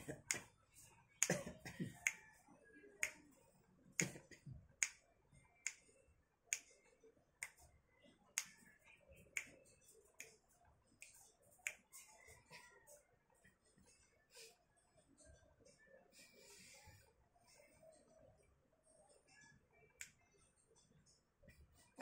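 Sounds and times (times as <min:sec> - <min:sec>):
finger snaps: 0:00.2 - 0:00.5, 0:01.2 - 0:02.2, 0:03.0 - 0:03.4, 0:04.0 - 0:05.0, 0:05.6 - 0:06.8, 0:07.4 - 0:07.7, 0:08.3 - 0:12.1, 0:19.9 - 0:20.2.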